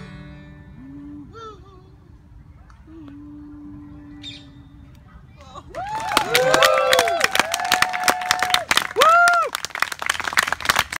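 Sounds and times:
people whooping: 5.4 - 9.7
crowd applauding: 5.4 - 11.0.

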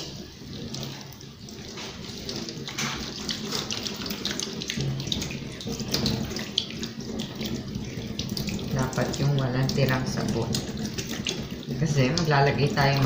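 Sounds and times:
tap water running into sink: 0.0 - 13.0
water splashing: 0.0 - 13.0.

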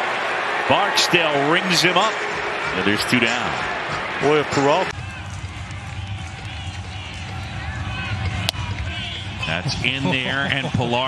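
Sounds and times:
crowd murmur: 2.2 - 5.3, 5.9 - 11.0.

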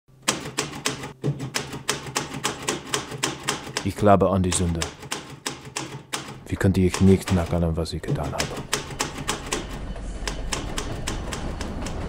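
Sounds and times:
manual typewriter typing: 0.2 - 12.0.

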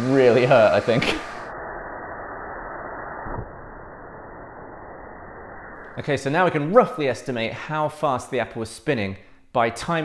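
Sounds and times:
compressed air hissing: 0.0 - 3.3.

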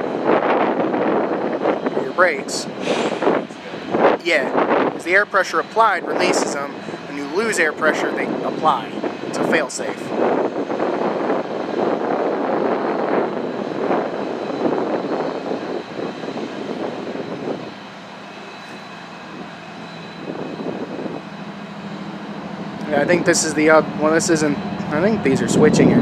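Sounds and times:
diesel locomotive engine running: 0.0 - 26.0.

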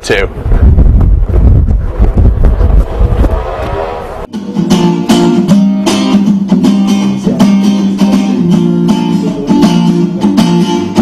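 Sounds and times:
acoustic guitar strumming chords: 4.3 - 11.0
live music with heavy bass: 4.3 - 11.0.

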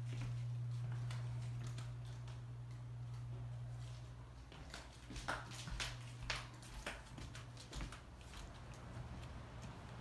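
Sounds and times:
footsteps on wood floor: 0.0 - 9.2
steady low hum: 0.0 - 10.0.

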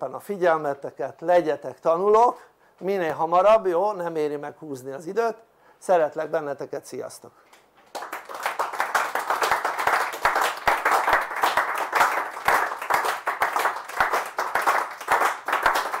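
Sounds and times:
audience applauding: 7.9 - 16.0.

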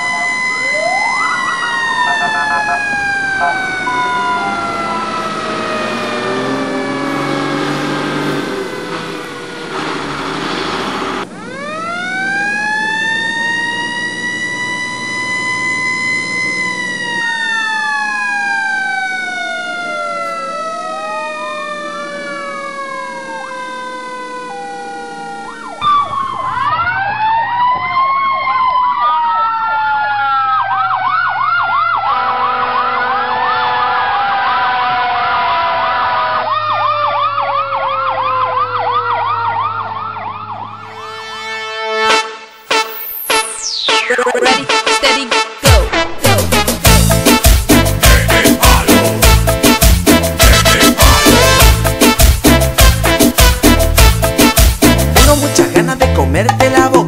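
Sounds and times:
truck engine hum: 0.0 - 43.0, 46.2 - 57.0
siren yelp: 0.0 - 54.1
fire engine siren wailing: 0.0 - 54.8.

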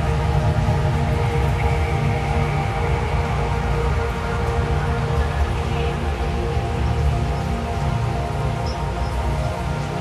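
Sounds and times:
dark ambient drone music: 0.0 - 10.0.

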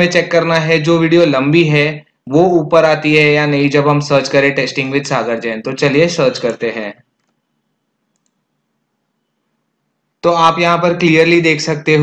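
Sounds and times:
computer mouse click: 7.2 - 7.4, 8.1 - 8.4.

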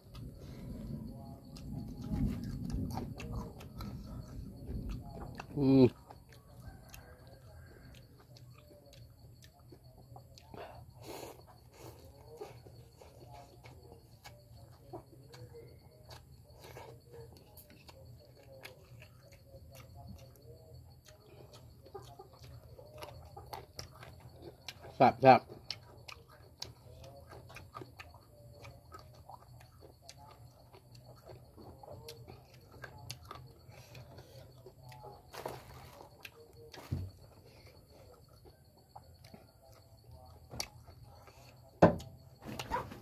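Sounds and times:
faint low coo: 0.0 - 24.9
slurping and chewing noodles: 0.0 - 42.8
low steady hum: 0.0 - 43.0.

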